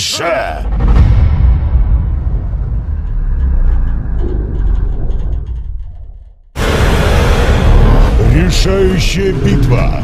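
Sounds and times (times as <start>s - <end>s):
deep horror rumble: 0.6s - 10.0s
sudden loud hit: 0.7s - 3.9s.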